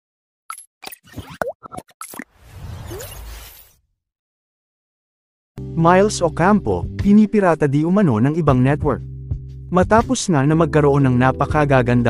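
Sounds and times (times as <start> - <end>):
cartoon-style blips and clicks: 0.5 - 3.3.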